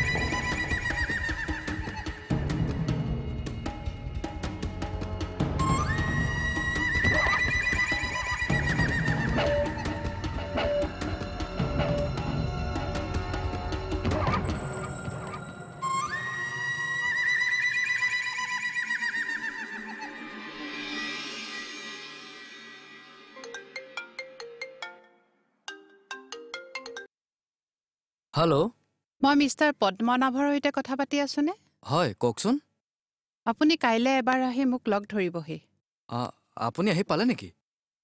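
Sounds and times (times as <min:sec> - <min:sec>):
background music: 0:00.0 - 0:27.1.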